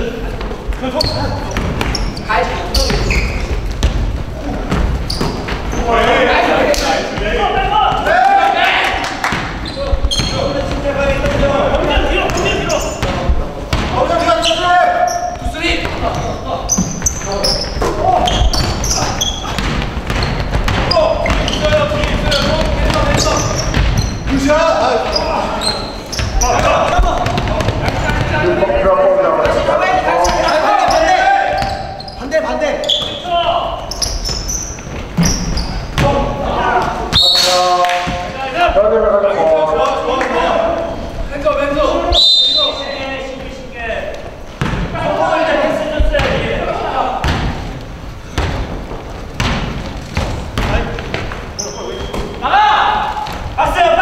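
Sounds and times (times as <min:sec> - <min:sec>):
players' voices calling out: 0:00.0 - 0:47.7.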